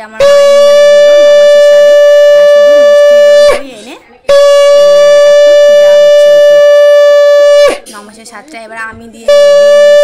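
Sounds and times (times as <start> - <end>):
conch shell blast: 0.0 - 8.0, 9.2 - 10.0
faint voices talking: 0.0 - 10.0.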